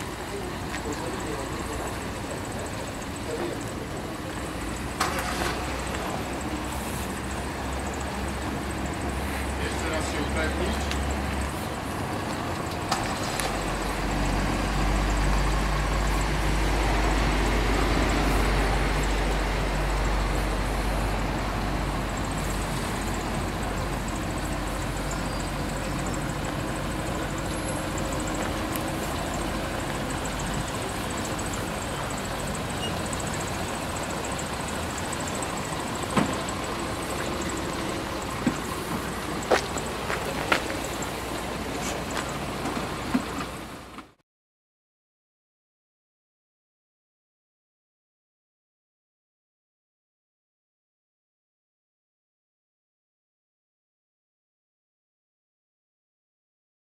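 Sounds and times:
car engine running at low speed: 0:00.0 - 0:44.2.

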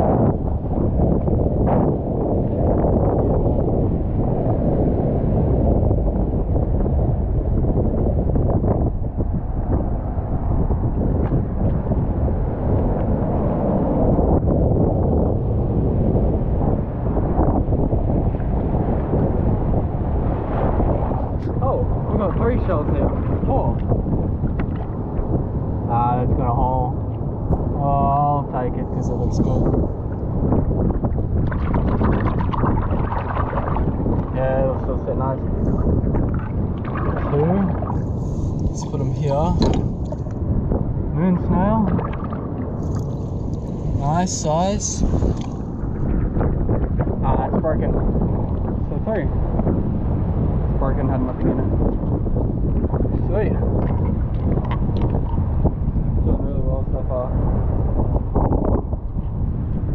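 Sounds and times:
wind buffeting microphone: 0:00.0 - 0:59.9
man's voice: 0:27.8 - 0:29.6, 0:38.7 - 0:39.8, 0:44.0 - 0:45.1
surf washing over rocks: 0:31.3 - 0:40.4, 0:41.2 - 0:46.2.

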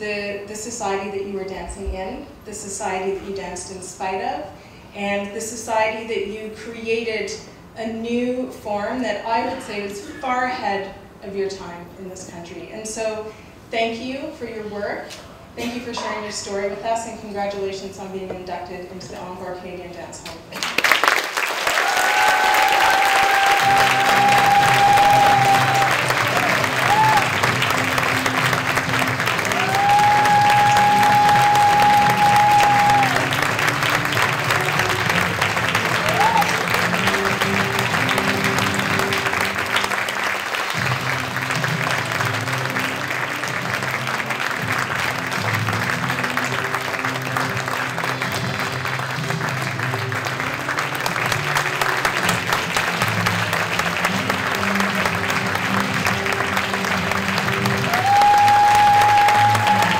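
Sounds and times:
audience applauding: 0:20.6 - 0:59.9
background music: 0:21.8 - 0:59.9.

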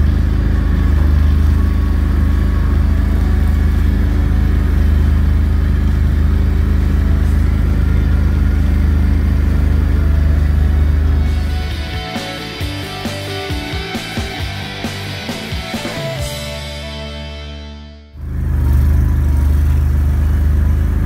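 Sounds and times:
engine droning: 0:00.0 - 0:21.0.

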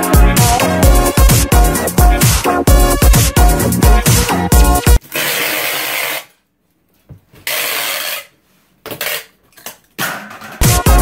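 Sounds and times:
music: 0:00.0 - 0:05.0, 0:10.0 - 0:11.0
tape rubbing on cardboard box: 0:07.4 - 0:08.4.

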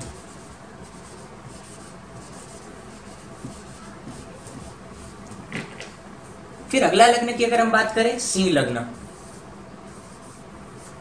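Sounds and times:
eraser swishing on whiteboard: 0:00.0 - 0:05.8, 0:09.0 - 0:11.0.

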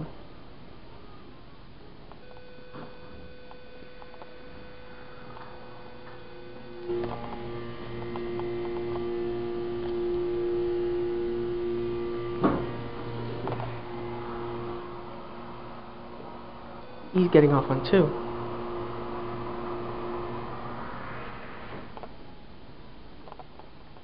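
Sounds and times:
elevator pump machinery hum: 0:04.1 - 0:22.5
machinery thump: 0:12.3 - 0:13.8.

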